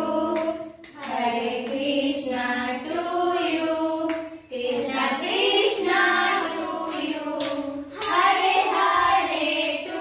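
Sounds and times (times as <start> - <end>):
women and children singing: 0.0 - 10.0
hand claps: 0.3 - 1.9, 4.0 - 5.5, 6.3 - 10.0.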